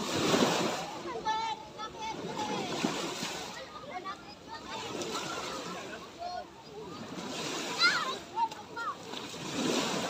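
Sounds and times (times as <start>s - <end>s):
children calling and shouting: 0.0s - 10.0s
small waves washing on shore: 0.0s - 10.0s
water splashing: 0.0s - 10.0s.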